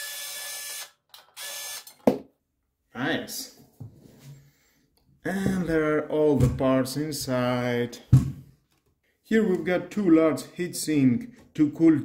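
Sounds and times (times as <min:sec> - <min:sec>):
electric screwdriver motor: 0:00.0 - 0:02.0.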